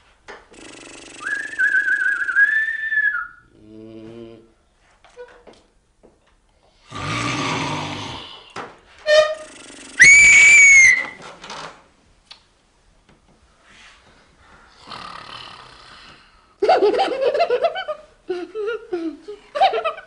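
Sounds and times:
man snoring loudly: 0:00.6 - 0:01.6, 0:06.8 - 0:08.4, 0:14.8 - 0:16.1
sharp steady whistle: 0:01.2 - 0:03.5, 0:10.0 - 0:11.1.

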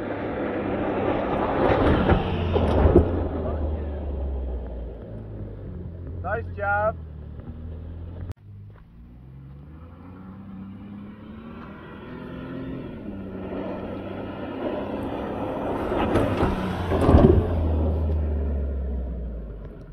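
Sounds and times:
car engine accelerating: 0:00.0 - 0:19.9.

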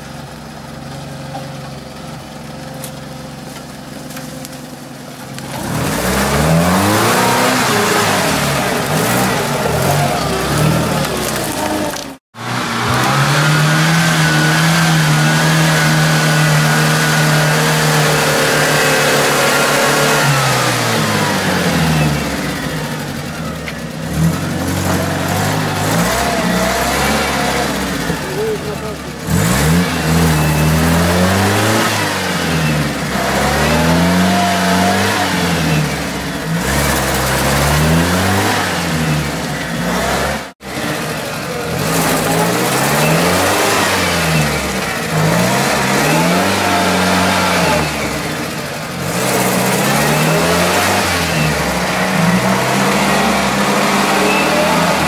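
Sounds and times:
engine revving hard: 0:05.4 - 0:55.0.

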